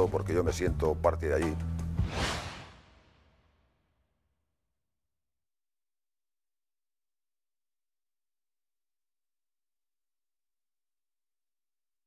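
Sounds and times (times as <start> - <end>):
whoosh sound effect: 2.0 - 3.4.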